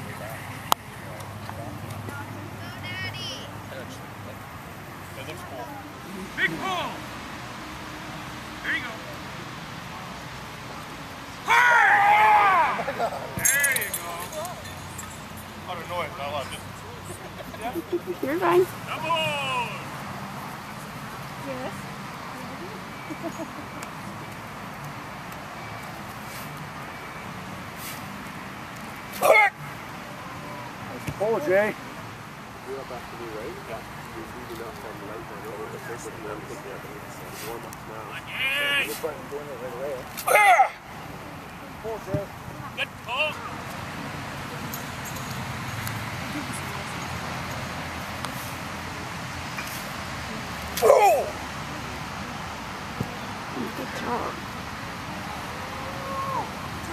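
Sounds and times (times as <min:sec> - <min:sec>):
open-air background noise: 0:00.0 - 0:56.9
outdoor background noise: 0:00.0 - 0:56.9
loud human yell: 0:11.4 - 0:13.0, 0:18.9 - 0:19.8, 0:29.2 - 0:29.6, 0:40.2 - 0:40.8, 0:50.8 - 0:51.4, 0:55.6 - 0:56.6.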